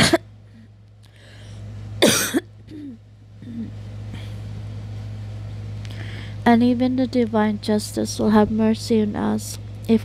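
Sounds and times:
person coughing: 0:00.0 - 0:00.3, 0:02.0 - 0:03.8
steady low hum: 0:00.0 - 0:10.0.

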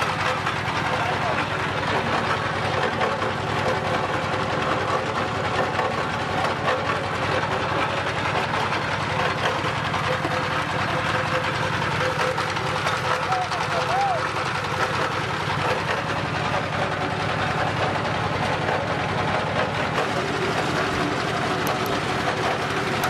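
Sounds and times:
diesel engine knocking: 0:00.0 - 0:23.0.

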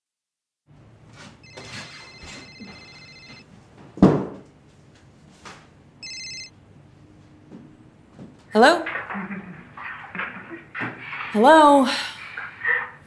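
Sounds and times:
cell phone ringtone: 0:01.4 - 0:03.4, 0:06.0 - 0:06.6.

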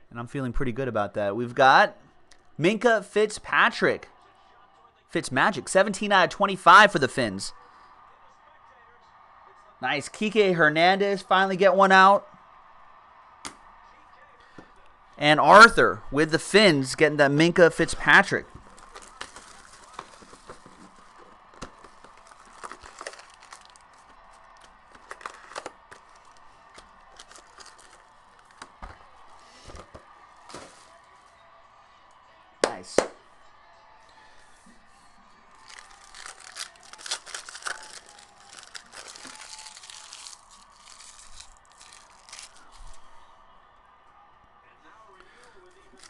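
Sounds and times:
cards being handled: 0:18.5 - 0:29.0, 0:35.6 - 0:43.0
foil wrapper tearing and crinkling: 0:18.9 - 0:20.6, 0:22.2 - 0:24.1, 0:35.6 - 0:42.8.

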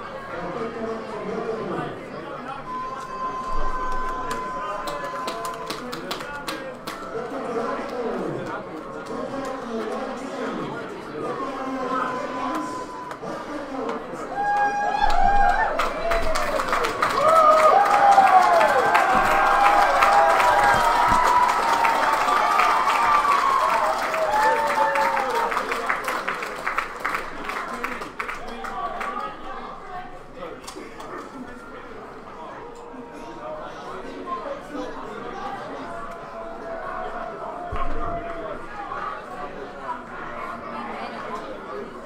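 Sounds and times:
crowd applauding: 0:03.3 - 0:09.4, 0:12.4 - 0:29.4.

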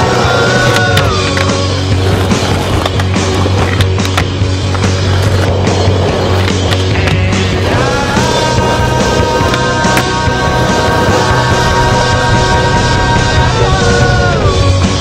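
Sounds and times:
skateboard clacks: 0:00.0 - 0:12.3
indie rock song: 0:00.0 - 0:15.0
skateboard wheels rolling on concrete: 0:00.0 - 0:15.0.

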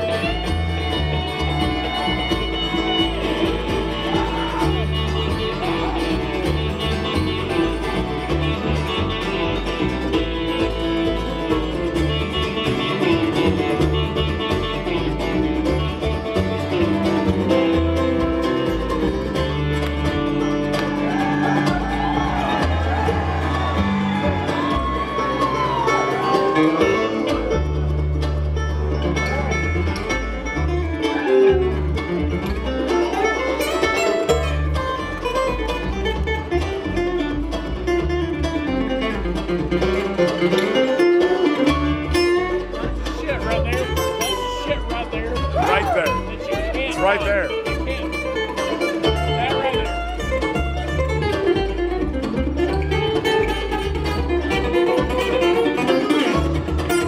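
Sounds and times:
bluegrass band playing: 0:00.0 - 0:57.0.

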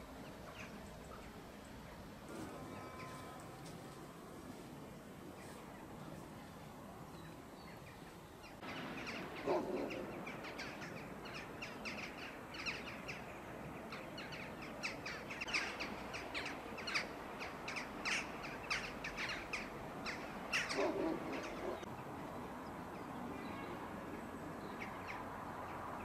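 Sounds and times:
small birds chirping: 0:04.8 - 0:26.0.

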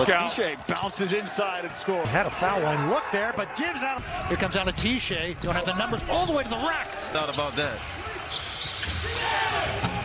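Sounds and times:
sneaker squeaks: 0:07.2 - 0:09.5.

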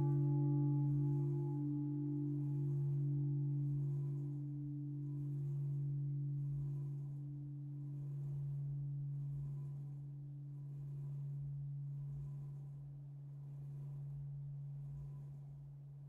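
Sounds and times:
large church bell humming: 0:00.0 - 0:06.4.

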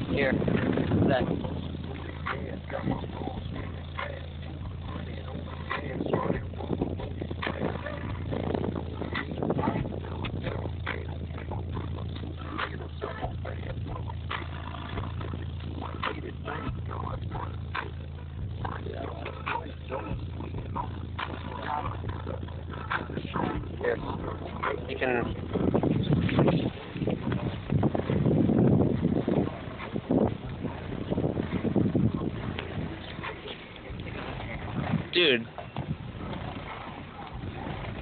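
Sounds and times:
car subwoofers playing deep bass: 0:00.0 - 0:38.0
rattles and buzzes: 0:00.0 - 0:38.0.

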